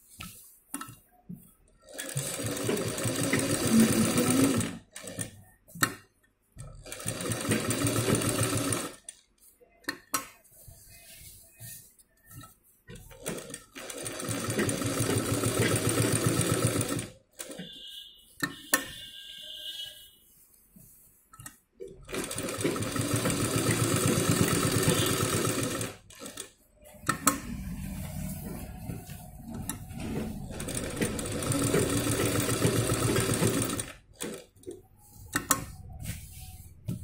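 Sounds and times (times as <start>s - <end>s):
sewing machine stitching: 1.8s - 5.4s, 6.6s - 9.0s, 12.3s - 18.0s, 21.9s - 35.8s.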